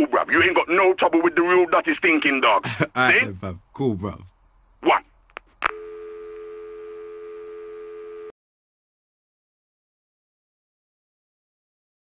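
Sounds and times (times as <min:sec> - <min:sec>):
telephone dial tone: 0:05.6 - 0:08.3.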